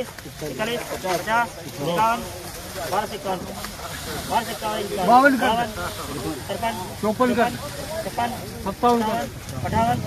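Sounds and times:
men talking and calling bids: 0.0s - 10.0s.

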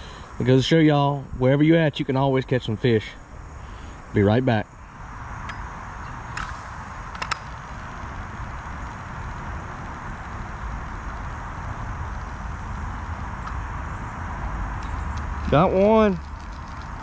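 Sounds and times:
low rumble: 5.0s - 17.0s
sharp clicks: 6.3s - 10.8s
hiss: 6.3s - 13.4s.

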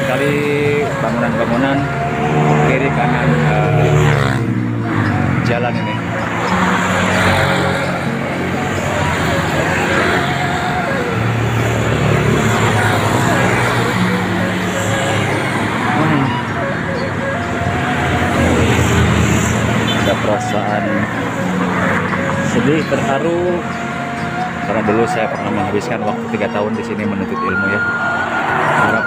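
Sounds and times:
background music: 0.0s - 29.0s
cars and motorcycles passing: 0.0s - 29.0s.

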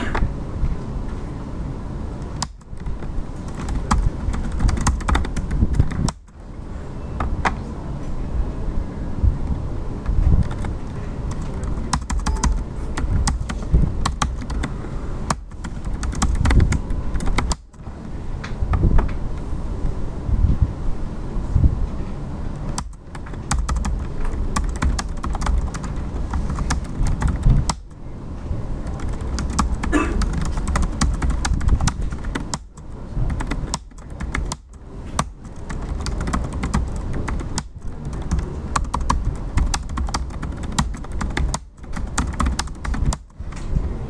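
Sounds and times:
fast typing on keyboard: 2.3s - 6.3s, 10.3s - 14.7s, 15.3s - 17.8s, 22.7s - 28.0s, 28.8s - 43.6s.

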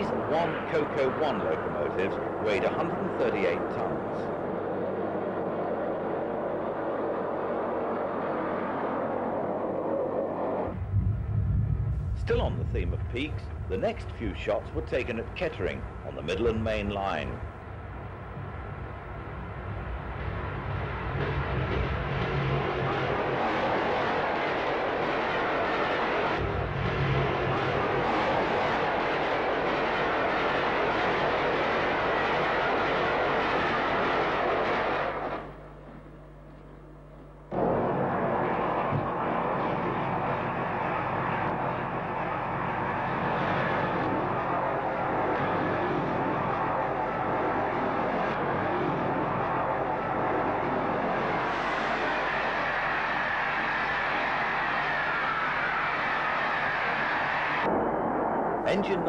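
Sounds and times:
diesel train passing: 10.4s - 35.1s.

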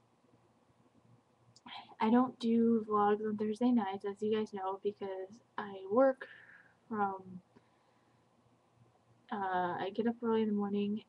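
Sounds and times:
woman speaking: 1.7s - 7.4s, 9.3s - 11.0s.

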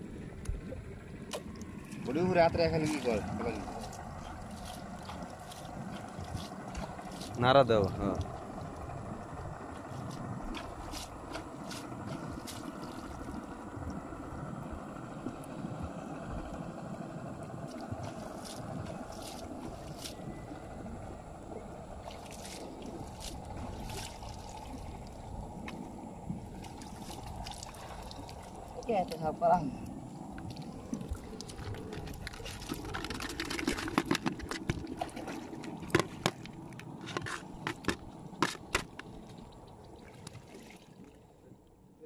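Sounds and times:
shallow water splashing: 0.2s - 41.5s.

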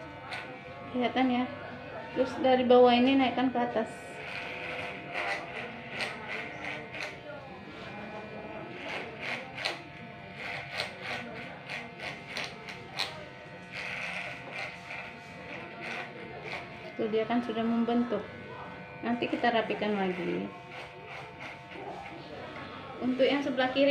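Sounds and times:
electric hair clippers buzzing: 0.0s - 23.9s
clipper blades crackling through hair: 4.2s - 7.2s, 8.8s - 16.9s, 18.8s - 22.0s.

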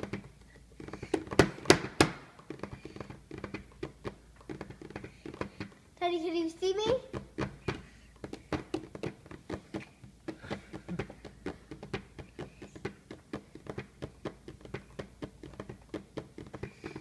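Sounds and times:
hand tapping on plastic tray: 0.0s - 17.0s.

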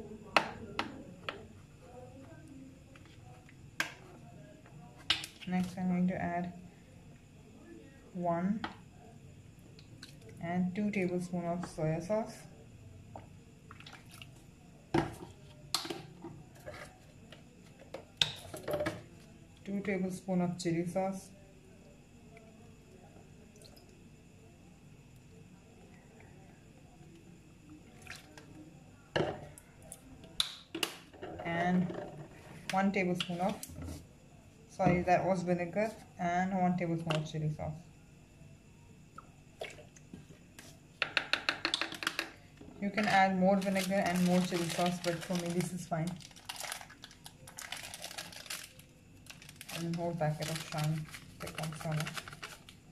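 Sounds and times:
plastic spoon and bottles handled: 39.6s - 52.9s
plastic spoon tapping plastic bowl: 41.0s - 42.4s.

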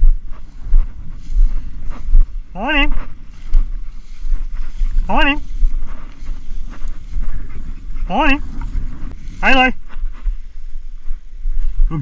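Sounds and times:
rustling of dry grass: 0.0s - 12.0s
wind buffeting microphone: 0.0s - 12.0s.

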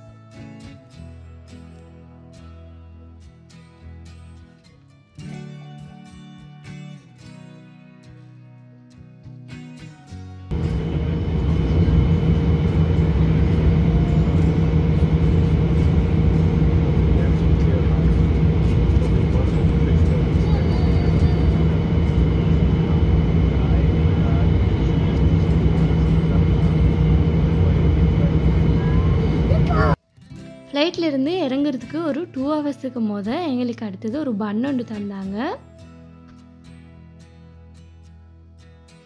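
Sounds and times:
airliner cabin drone: 10.5s - 30.0s
faint voices: 10.6s - 30.0s.

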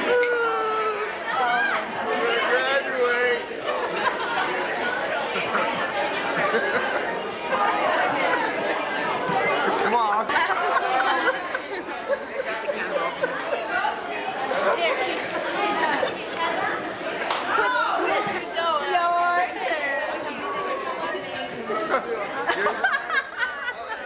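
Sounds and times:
chatter of many people: 0.0s - 24.0s.

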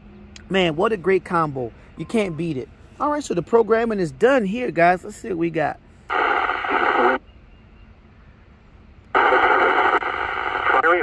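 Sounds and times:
hissy radio receiver audio: 6.1s - 7.2s, 9.1s - 11.0s.

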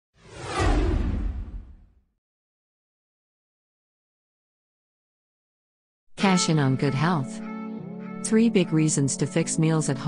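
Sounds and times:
deep rumble: 0.2s - 1.9s
whoosh sweeping down: 0.2s - 1.9s.

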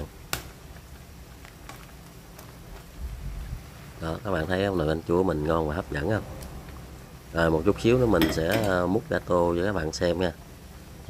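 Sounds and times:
ladle clinking against pot: 8.2s - 8.8s.

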